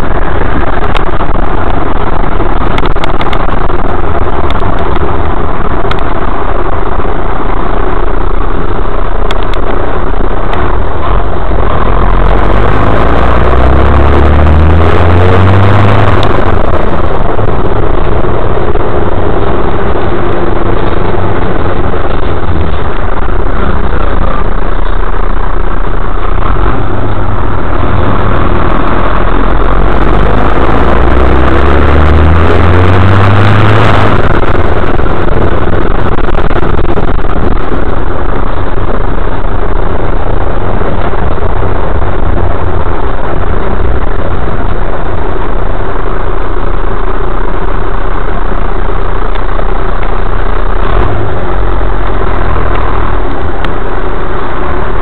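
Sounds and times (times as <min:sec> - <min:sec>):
bus engine accelerating: 0:00.0 - 0:55.0.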